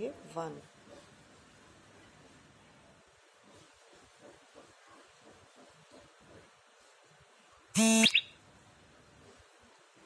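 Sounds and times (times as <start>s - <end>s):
buzzer-like beep with upward chirp: 7.8s - 8.3s.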